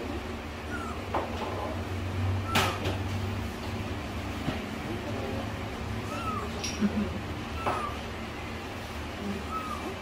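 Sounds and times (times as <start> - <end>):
kitten mewing: 0.6 - 1.2, 2.4 - 3.0, 6.0 - 8.1, 9.2 - 10.0.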